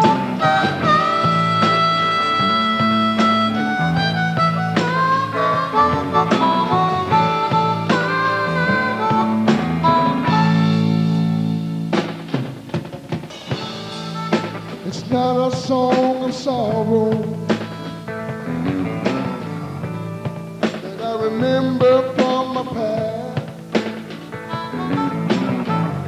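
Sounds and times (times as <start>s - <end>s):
harmonica solo: 0.0s - 12.4s, 13.3s - 20.9s, 21.8s - 26.0s
rock band with guitar and drums: 0.0s - 26.0s.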